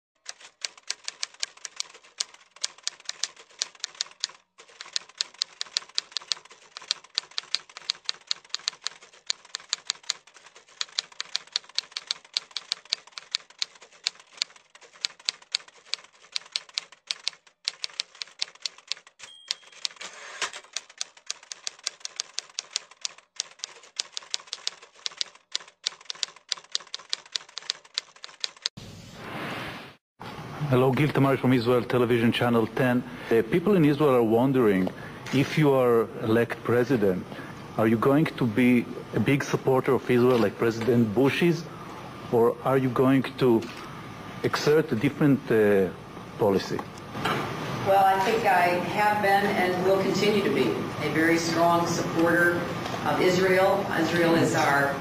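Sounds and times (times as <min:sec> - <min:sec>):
typewriter carriage return: 0:00.2 - 0:28.7
typewriter key strikes: 0:10.8 - 0:28.7
typewriter bell ping: 0:19.2 - 0:20.2.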